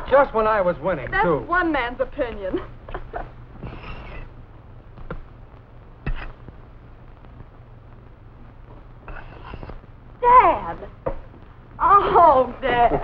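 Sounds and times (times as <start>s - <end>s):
film soundtrack hum and hiss: 0.0s - 13.0s.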